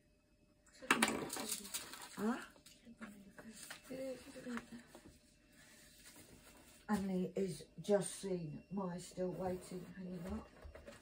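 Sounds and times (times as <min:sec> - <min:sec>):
paper rustling: 0:01.2 - 0:07.0.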